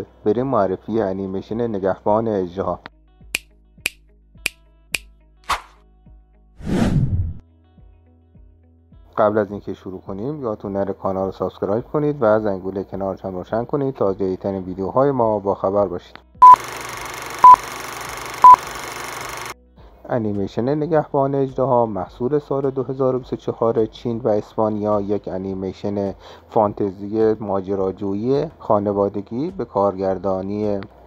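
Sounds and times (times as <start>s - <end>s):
swish: 5.4s - 5.8s, 6.6s - 7.4s
whoosh: 6.6s - 7.4s
short high beep: 17.4s - 17.6s, 18.4s - 18.6s
faint music: 19.6s - 31.0s.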